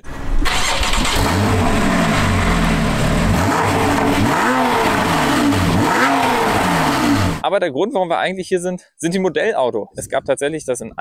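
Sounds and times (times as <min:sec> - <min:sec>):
car engine idling and revving: 0:00.0 - 0:07.4.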